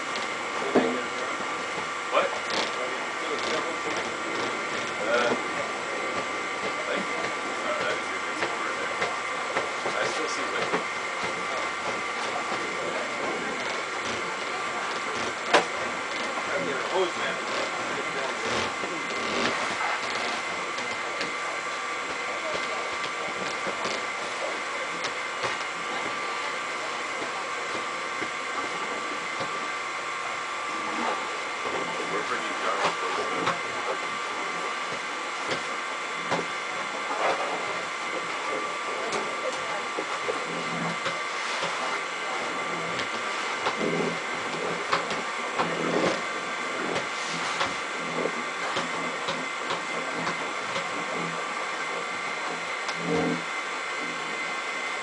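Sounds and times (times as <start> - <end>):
knocks and clatter of work: 0.0 - 54.4
motor whining: 0.0 - 55.0.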